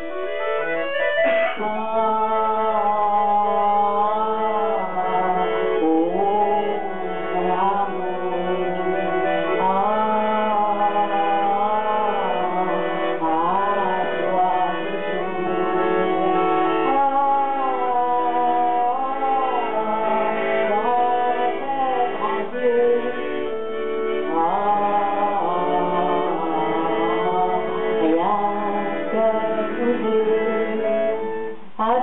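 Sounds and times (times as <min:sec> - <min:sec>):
button accordion playing: 0:00.0 - 0:32.0
woman singing: 0:01.5 - 0:23.4, 0:24.2 - 0:32.0.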